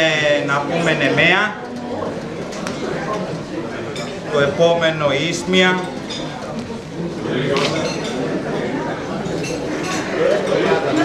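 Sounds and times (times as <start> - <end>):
murmur of guests chatting: 0.0 - 11.0.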